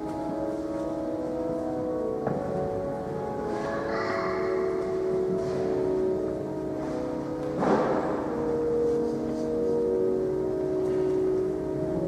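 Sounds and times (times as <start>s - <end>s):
church music sustained chord: 0.0s - 12.0s.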